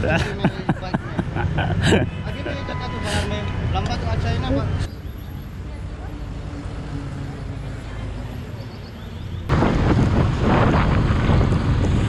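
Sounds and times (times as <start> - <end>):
people talking: 0.0 - 6.4, 7.2 - 8.7
motorbike and traffic rumble: 0.0 - 12.0.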